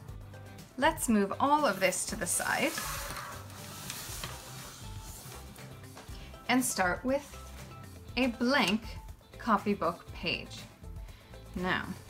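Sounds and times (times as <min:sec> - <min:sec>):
quiet background music: 0:00.0 - 0:12.0
objects scraping across tabletop: 0:01.6 - 0:06.2.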